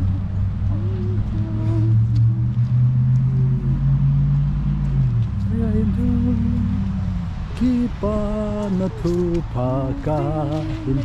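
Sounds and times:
low voice humming: 0:00.0 - 0:04.1, 0:05.4 - 0:11.0
car rumble: 0:00.0 - 0:11.0
people talking: 0:07.6 - 0:11.0.

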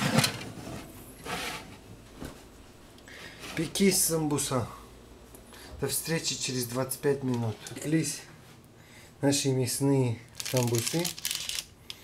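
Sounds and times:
baking parchment crinkling: 0:10.3 - 0:12.0.

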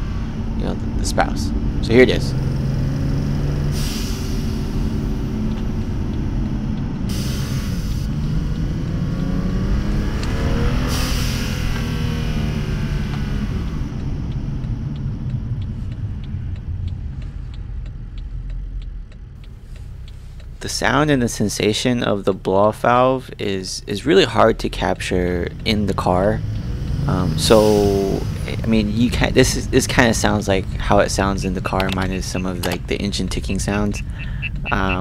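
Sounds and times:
car engine revving: 0:00.0 - 0:35.0
blow-off valve whoosh: 0:03.6 - 0:04.8
fuel injectors ticking: 0:13.1 - 0:35.0.

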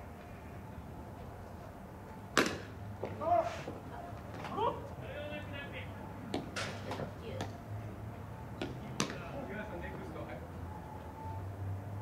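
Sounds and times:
baseball smacking at home plate: 0:02.4 - 0:02.7.

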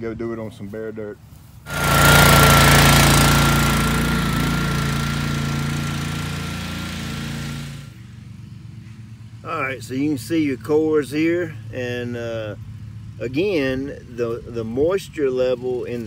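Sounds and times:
lawn aerator engine running: 0:01.7 - 0:08.0
steady high whine: 0:01.7 - 0:08.0.

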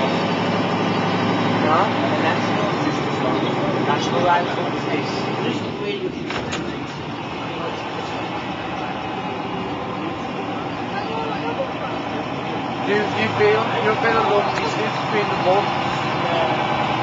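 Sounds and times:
bus diesel engine running: 0:00.0 - 0:17.0.

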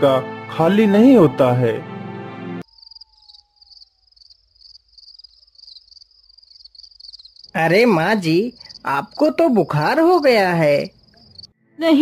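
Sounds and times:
crickets chirping: 0:02.6 - 0:11.5.

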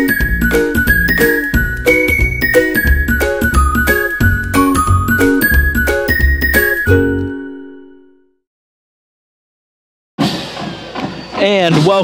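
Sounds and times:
jingle final chord: 0:00.0 - 0:08.3.

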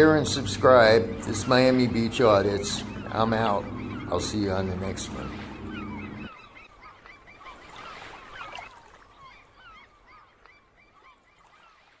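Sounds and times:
seagulls calling: 0:00.0 - 0:12.0.

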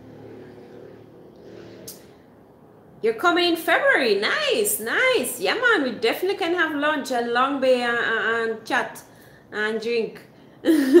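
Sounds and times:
engine humming: 0:00.0 - 0:02.9.

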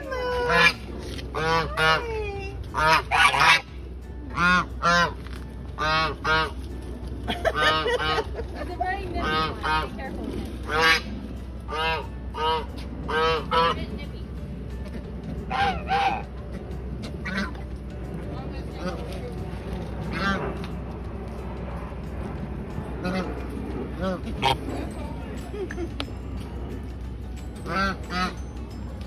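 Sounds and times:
goose honking: 0:00.4 - 0:02.0, 0:02.7 - 0:03.7, 0:04.3 - 0:05.2, 0:05.8 - 0:06.6, 0:07.5 - 0:08.3, 0:09.2 - 0:10.0, 0:10.6 - 0:13.9, 0:15.5 - 0:16.3, 0:17.0 - 0:17.6, 0:20.1 - 0:20.6, 0:23.0 - 0:23.4, 0:24.0 - 0:24.7, 0:27.6 - 0:28.4.

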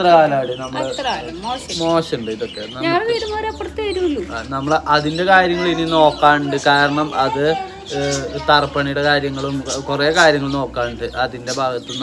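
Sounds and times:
man talking: 0:00.0 - 0:01.0, 0:01.8 - 0:03.0, 0:04.3 - 0:12.0
woman talking: 0:00.8 - 0:01.8, 0:02.8 - 0:04.3.

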